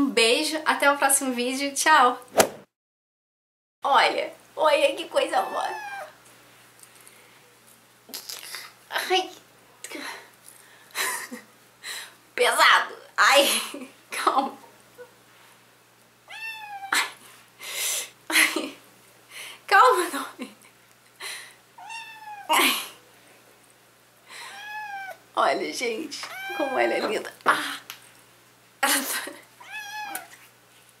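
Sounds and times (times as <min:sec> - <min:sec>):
kitten meowing: 0:05.4 - 0:06.1, 0:16.3 - 0:17.0, 0:21.8 - 0:22.5, 0:24.5 - 0:25.2, 0:26.2 - 0:27.2, 0:29.6 - 0:30.3.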